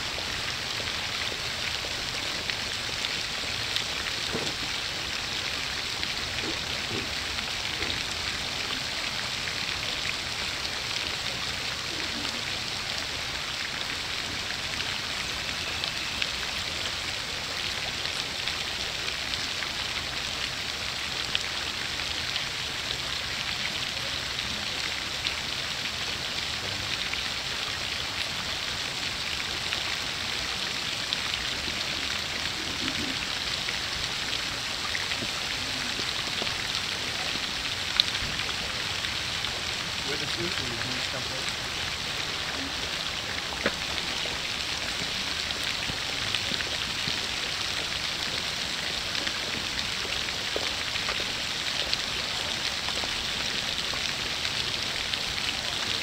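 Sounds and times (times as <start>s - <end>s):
fountain spray splashing on water: 0.0s - 56.0s.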